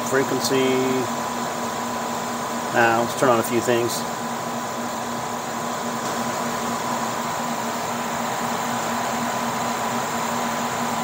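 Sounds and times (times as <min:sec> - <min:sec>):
faint steady whine: 0:00.0 - 0:11.0
low electrical hum: 0:00.0 - 0:11.0
machinery and fan noise: 0:00.0 - 0:11.0.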